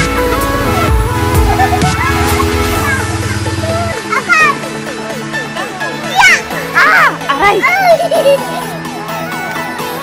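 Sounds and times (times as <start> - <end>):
background music: 0.0 - 10.0
children's excited voices: 1.9 - 10.0.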